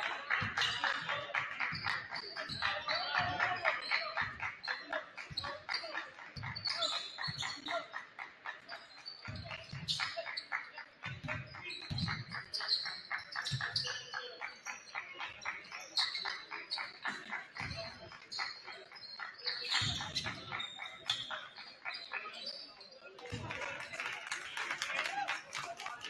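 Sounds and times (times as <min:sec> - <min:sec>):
voices of players and spectators: 0:00.0 - 0:26.0
sneakers squeaking on floor: 0:00.4 - 0:23.5.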